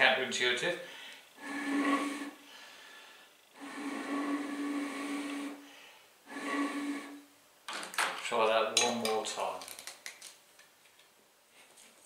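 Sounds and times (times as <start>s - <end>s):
breathy hiss: 0.8s - 7.3s
pulse jet hollow hum: 1.4s - 2.6s.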